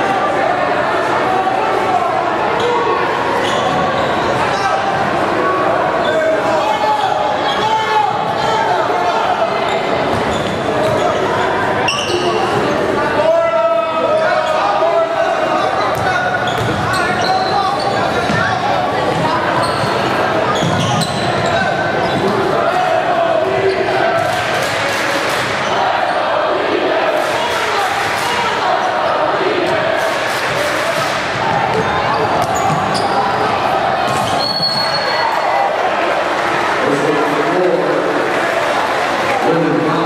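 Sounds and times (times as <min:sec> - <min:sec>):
people talking and calling out: 0:00.0 - 0:40.0
sneakers squeaking: 0:03.4 - 0:04.9, 0:09.6 - 0:12.9, 0:15.8 - 0:22.5, 0:30.4 - 0:35.4.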